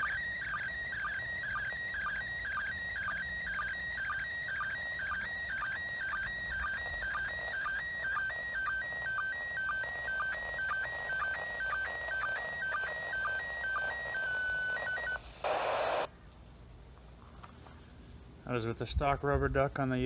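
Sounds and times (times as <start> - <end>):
radio tones stepping between pitches: 1.6 - 16.1
faint radio hiss: 6.7 - 20.0.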